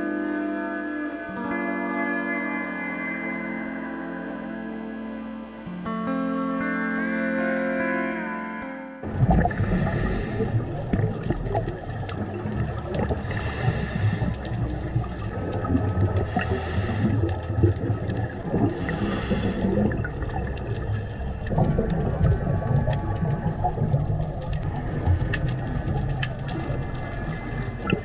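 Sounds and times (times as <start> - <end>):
bubbling of exhaled air: 9.0 - 28.0
diver inhaling through regulator: 9.1 - 11.7, 13.0 - 15.2, 16.1 - 17.8, 18.4 - 21.6
faint clicks: 9.4 - 28.0.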